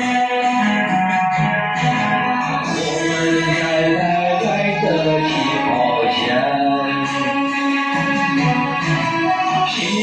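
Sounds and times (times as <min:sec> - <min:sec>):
backing music: 0:00.0 - 0:10.0
man singing pop love song: 0:02.6 - 0:07.5, 0:09.5 - 0:10.0.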